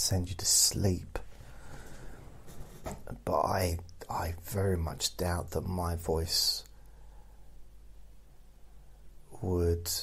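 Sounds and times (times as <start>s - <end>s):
faint room noise: 0.0s - 10.0s
man speaking quietly: 3.1s - 6.7s.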